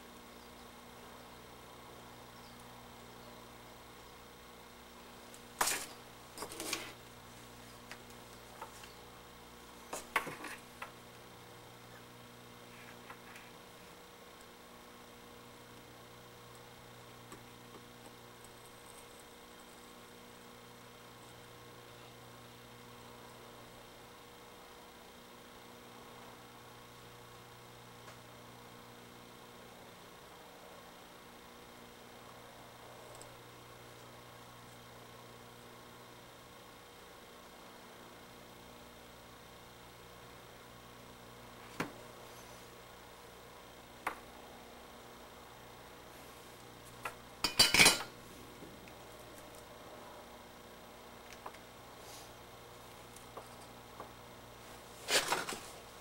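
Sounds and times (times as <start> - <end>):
faint mains hum: 0.0 - 56.0
metal tool clattering on workbench: 47.4 - 48.1.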